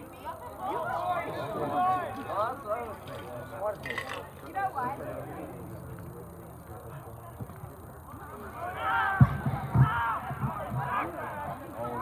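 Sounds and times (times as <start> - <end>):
people shouting outdoors: 0.0 - 2.9, 8.1 - 12.0.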